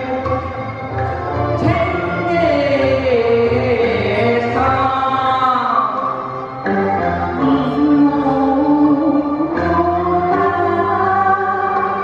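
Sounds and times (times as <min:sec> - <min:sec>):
woman singing through microphone: 0:00.0 - 0:12.0.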